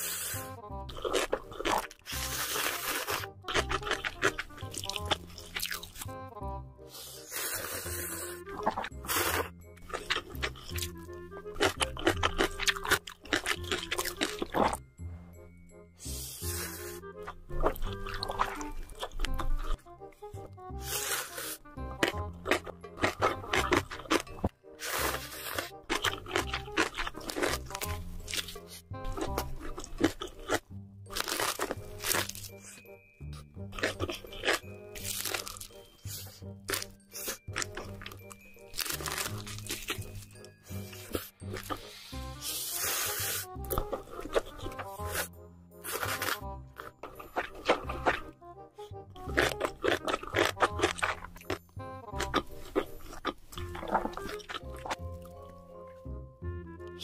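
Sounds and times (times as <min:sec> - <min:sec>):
wet chewing of noodles: 0:00.0 - 0:06.2, 0:06.8 - 0:14.8, 0:16.0 - 0:56.0
background music: 0:00.0 - 0:57.0.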